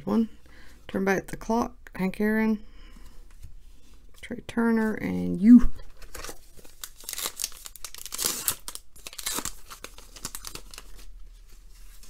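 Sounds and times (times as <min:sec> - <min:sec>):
wrapper tearing and crinkling: 0:06.0 - 0:11.2.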